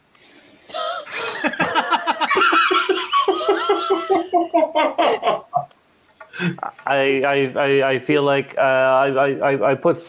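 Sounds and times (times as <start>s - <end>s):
people laughing: 1.0s - 5.7s, 6.4s - 6.8s.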